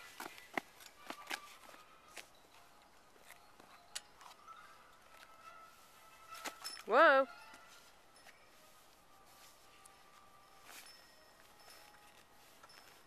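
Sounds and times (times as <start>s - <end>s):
faint footsteps: 0.0s - 13.0s.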